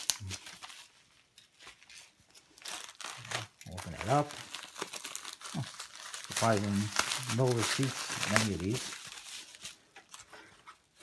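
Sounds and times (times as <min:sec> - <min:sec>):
paper mailer crinkling: 0:01.6 - 0:10.3.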